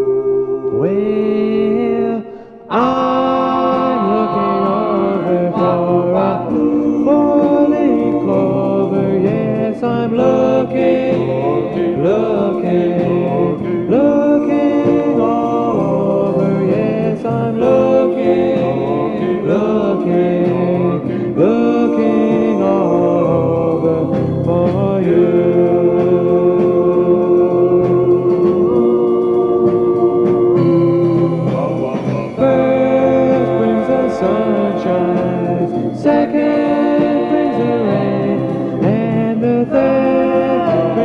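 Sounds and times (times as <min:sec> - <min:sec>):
vocal group singing close harmony: 0:00.0 - 0:41.0.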